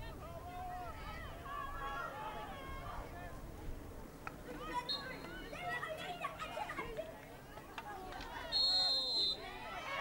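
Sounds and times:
girls calling and shouting: 4.5s - 8.5s.

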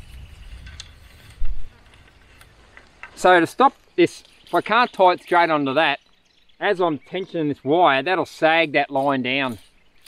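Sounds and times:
wind rumble on microphone: 0.0s - 2.6s.

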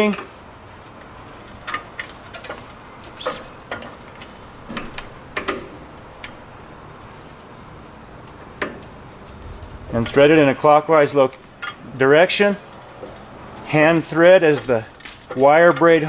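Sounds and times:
handling clicks and knocks: 0.0s - 7.6s, 8.2s - 16.0s.

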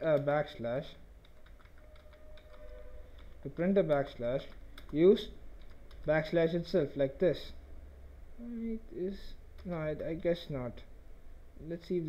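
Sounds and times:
keyboard typing: 1.2s - 5.0s, 5.6s - 6.1s.

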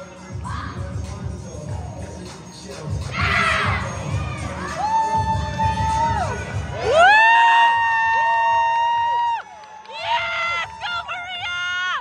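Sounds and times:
young voices shouting together: 3.1s - 7.0s.

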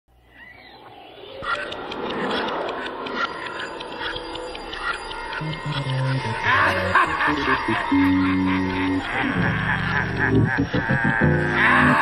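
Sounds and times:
animal-like calls: 0.3s - 12.0s
spooky noisy music: 1.4s - 12.0s.

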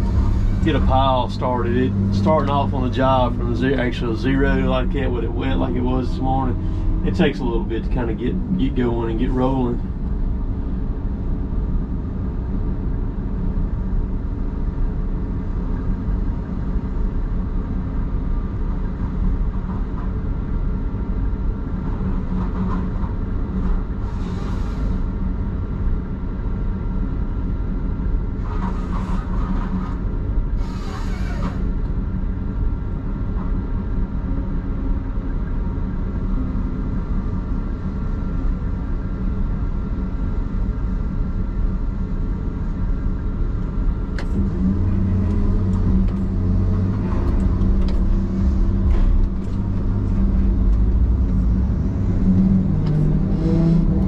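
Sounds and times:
diesel engine and hydraulics: 0.0s - 54.0s
thin steady whine: 0.0s - 54.0s.

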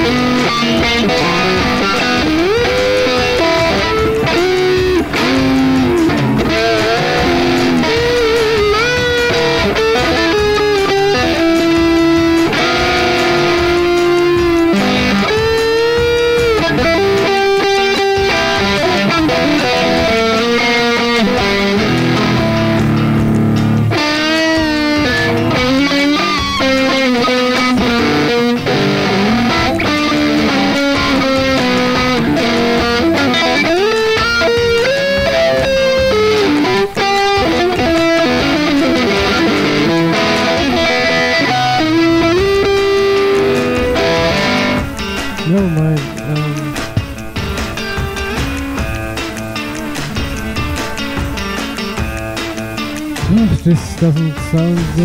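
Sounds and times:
electric guitar blues-rock lead: 0.0s - 55.0s
held low guitar chord: 0.0s - 55.0s.

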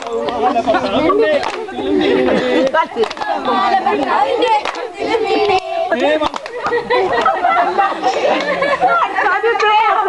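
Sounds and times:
people talking over one another: 0.0s - 10.0s
laughter: 6.5s - 9.3s.

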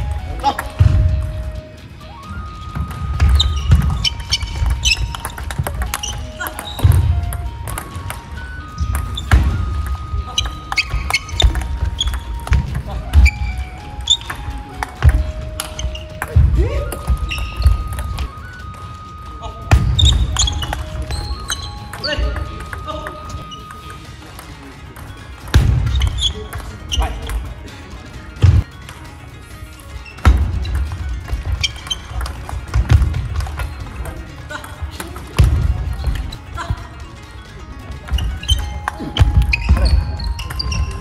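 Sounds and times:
shoes squeaking on floor: 0.0s - 28.8s, 29.6s - 41.0s
held synth notes melody: 0.0s - 41.0s
ping pong ball clicking: 3.2s - 8.3s, 8.9s - 12.9s, 31.7s - 33.7s.

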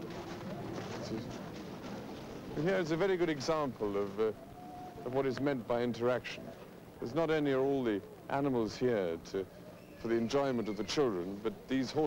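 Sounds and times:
bird calling softly: 4.2s - 5.3s, 6.0s - 7.0s, 9.4s - 12.0s.

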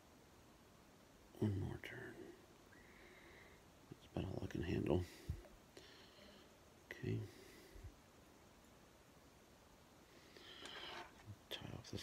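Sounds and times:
faint soft noise: 0.0s - 12.0s.

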